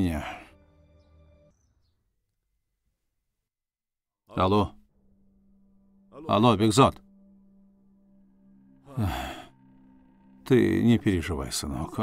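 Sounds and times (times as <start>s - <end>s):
man sighing: 8.9s - 9.6s.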